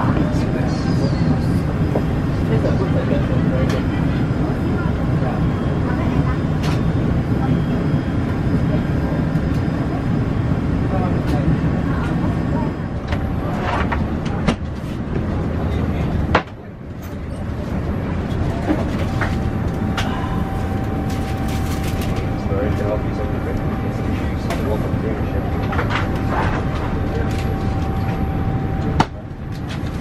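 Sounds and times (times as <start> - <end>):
cabin ventilation rumble: 0.0 - 30.0
indistinct voices: 15.2 - 30.0.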